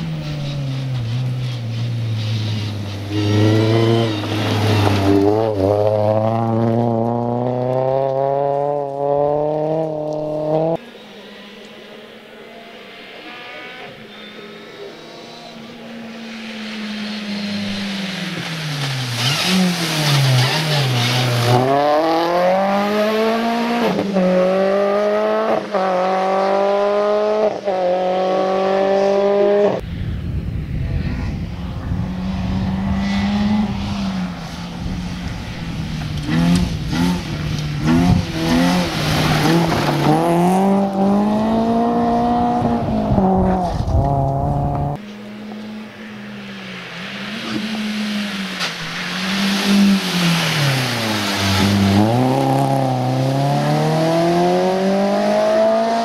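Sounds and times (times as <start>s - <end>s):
rally car engine revving: 0.0s - 29.8s, 31.0s - 56.0s
tyres rumbling on gravel: 17.8s - 22.1s, 35.5s - 42.2s.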